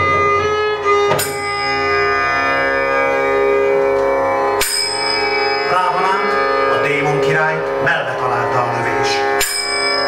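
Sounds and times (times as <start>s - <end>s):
violin playing: 0.0s - 10.0s
ringing metallic strike: 1.1s - 2.8s, 4.5s - 6.8s, 9.3s - 10.0s.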